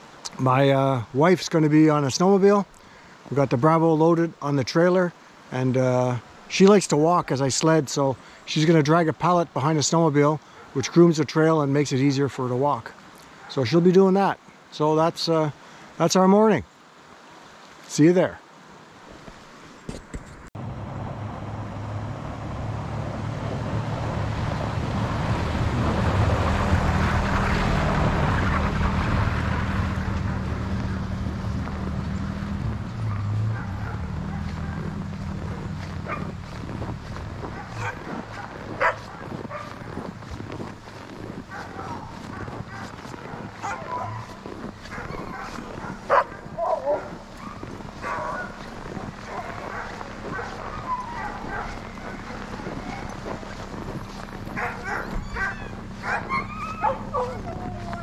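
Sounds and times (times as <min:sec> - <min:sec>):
sled dogs barking and yipping: 0:10.4 - 0:11.4, 0:13.2 - 0:14.0, 0:22.8 - 0:58.0
pickup truck driving past: 0:20.6 - 0:39.9, 0:40.6 - 0:58.0.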